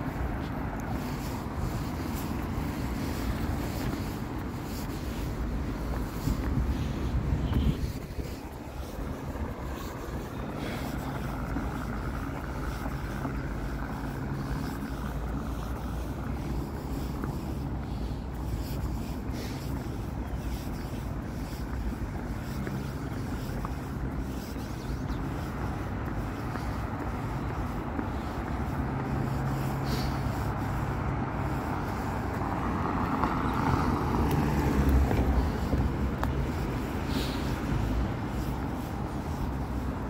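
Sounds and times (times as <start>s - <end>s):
vehicle motor humming: 0.0s - 40.0s
wind and road noise: 0.0s - 40.0s.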